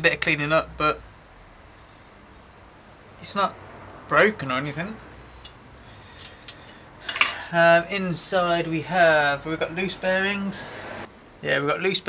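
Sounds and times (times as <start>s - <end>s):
small metal parts clinking: 5.4s - 7.4s.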